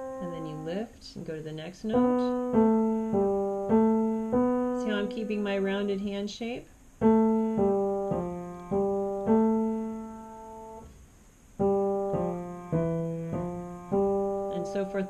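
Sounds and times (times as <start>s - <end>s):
piano notes: 0.0s - 6.0s, 7.0s - 11.0s, 11.6s - 15.0s.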